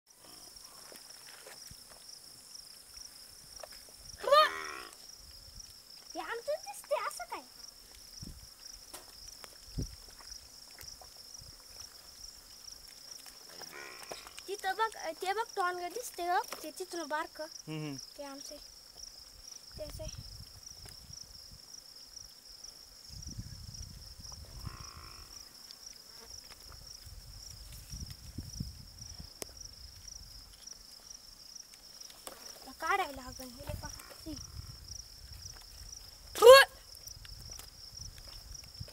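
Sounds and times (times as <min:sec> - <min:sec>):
insects droning: 0:00.1 - 0:38.9
calf bawling: 0:04.2 - 0:05.0
short voice-like calls: 0:04.2 - 0:05.0, 0:17.7 - 0:18.0, 0:36.4 - 0:36.8
wind rumble on microphone: 0:08.2 - 0:08.5, 0:09.6 - 0:10.1, 0:23.1 - 0:25.2, 0:27.0 - 0:29.5, 0:33.6 - 0:35.9, 0:37.1 - 0:38.9.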